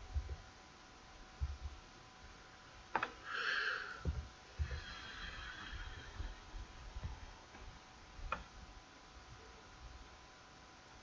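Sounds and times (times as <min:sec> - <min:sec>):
soft low thumps: 0:00.0 - 0:00.5, 0:01.2 - 0:01.9, 0:04.0 - 0:05.0, 0:05.8 - 0:08.7.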